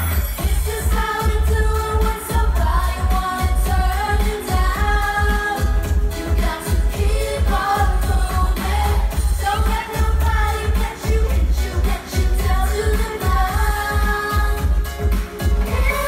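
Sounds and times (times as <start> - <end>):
dance-pop song over pa: 0.0 - 16.0.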